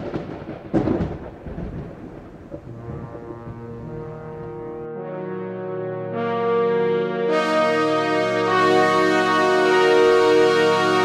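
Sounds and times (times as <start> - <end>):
thunderclap rolling into rumble: 0.0 - 4.8
held music chord: 2.7 - 11.0.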